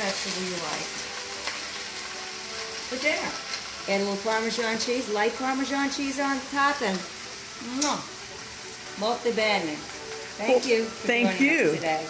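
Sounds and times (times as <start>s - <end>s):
greens sizzling in hot oil: 0.0s - 12.0s.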